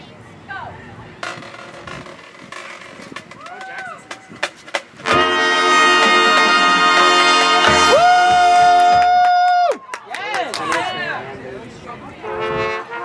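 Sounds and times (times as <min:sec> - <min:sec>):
marching band brass chord: 0:05.0 - 0:08.0.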